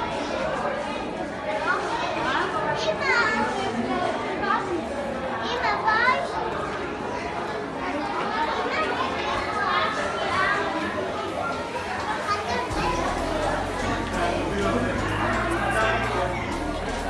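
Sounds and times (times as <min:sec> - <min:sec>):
chatter in echoing hall: 0:00.0 - 0:17.0
child's high-pitched voice: 0:12.2 - 0:13.7.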